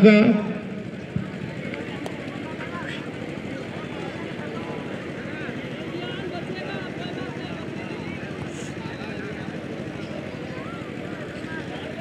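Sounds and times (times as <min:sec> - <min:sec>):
man speaking over loudspeaker: 0:00.0 - 0:00.9
distant crowd voices: 0:00.0 - 0:12.0.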